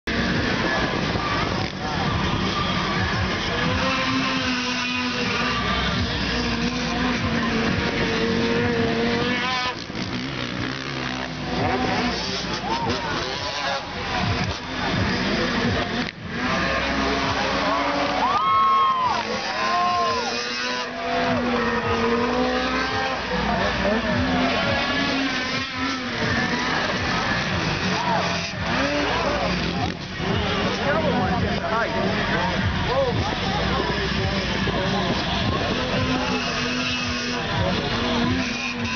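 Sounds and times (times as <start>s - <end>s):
snowmobile engines revving: 0.0s - 38.9s.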